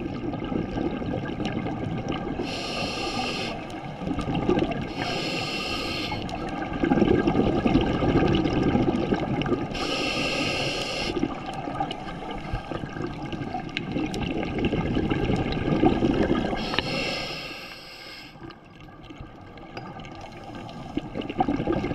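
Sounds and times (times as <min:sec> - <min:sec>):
rumble of exhaled bubbles: 0:00.0 - 0:05.6, 0:06.2 - 0:17.1, 0:18.4 - 0:21.9
hissing regulator inhale: 0:02.4 - 0:03.8, 0:04.9 - 0:06.4, 0:09.7 - 0:11.2, 0:16.5 - 0:18.5.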